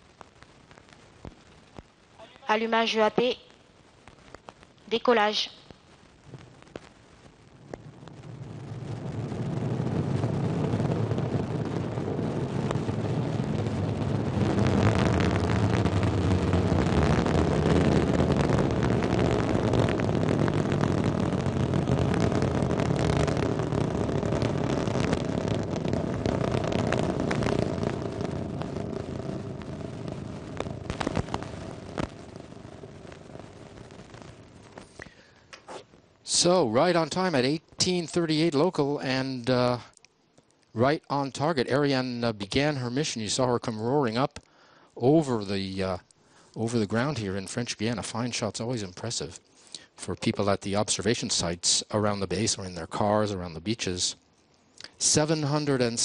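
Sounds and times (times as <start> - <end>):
sharp crackles: 0.0 - 56.0
rocket engine roaring: 7.5 - 35.1, 54.8 - 56.0.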